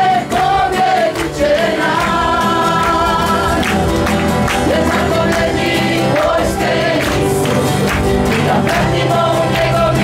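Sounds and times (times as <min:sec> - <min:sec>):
keyboard: 0:00.0 - 0:10.0
strummed acoustic guitars: 0:00.0 - 0:10.0
voices singing together: 0:00.0 - 0:10.0.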